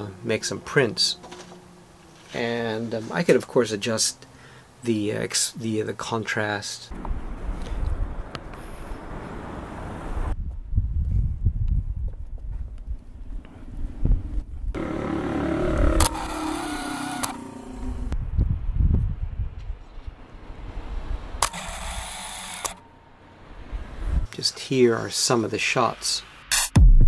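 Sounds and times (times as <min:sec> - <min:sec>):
traffic going by: 0:00.0 - 0:04.8, 0:06.9 - 0:10.4, 0:20.0 - 0:25.2
wind gusting on microphone: 0:07.0 - 0:14.8, 0:17.9 - 0:21.4, 0:23.6 - 0:24.3.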